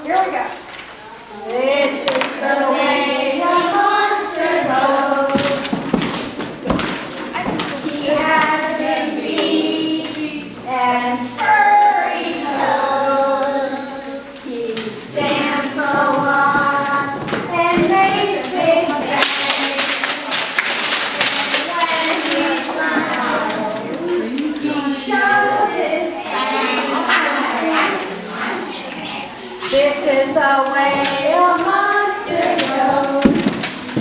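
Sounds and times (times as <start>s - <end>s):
children stamping feet: 4.6s - 8.5s, 15.1s - 24.9s, 30.3s - 34.0s
scattered claps: 4.6s - 10.4s, 14.7s - 25.3s, 29.9s - 34.0s
voices mingling: 6.6s - 34.0s.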